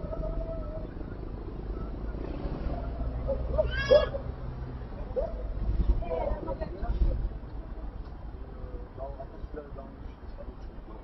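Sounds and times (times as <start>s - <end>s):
low street hum: 0.0s - 11.0s
young child crying and wailing: 3.6s - 4.2s.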